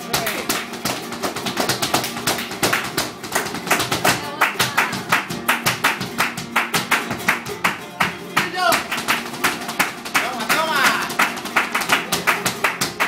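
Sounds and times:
flamenco guitar: 0.0s - 13.0s
shoes stamping on wooden stage: 0.0s - 13.0s.

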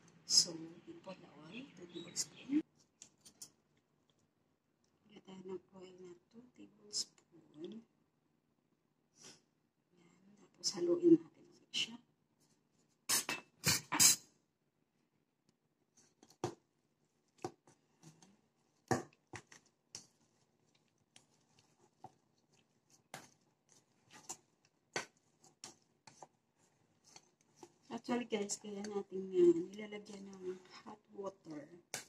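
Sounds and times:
mixing dough in steel bowl: 15.8s - 32.0s.

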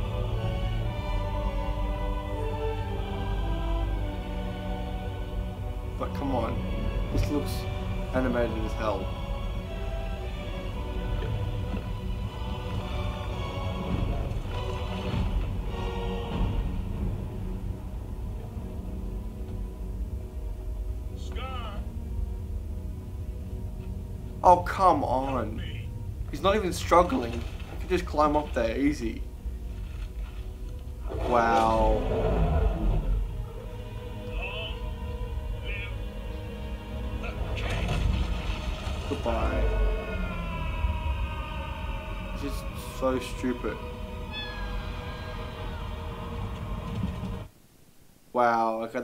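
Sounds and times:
tense film score music: 0.0s - 49.0s.

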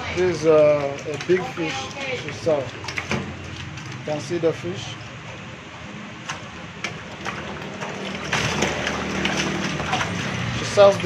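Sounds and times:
fish splashing in a metal tank: 0.0s - 11.0s.

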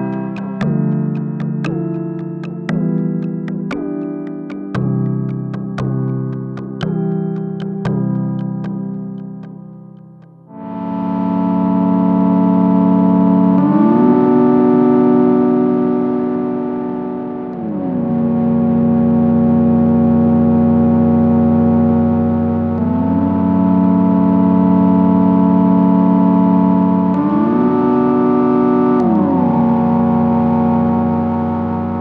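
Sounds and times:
synthesizer chord: 0.0s - 9.4s, 10.5s - 32.0s.

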